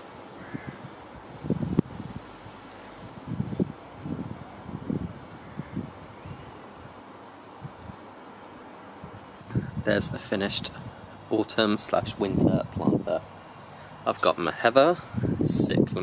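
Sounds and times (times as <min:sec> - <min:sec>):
wind on microphone: 0:00.4 - 0:07.0, 0:07.6 - 0:08.0, 0:09.0 - 0:11.3, 0:11.9 - 0:13.3, 0:15.0 - 0:16.0.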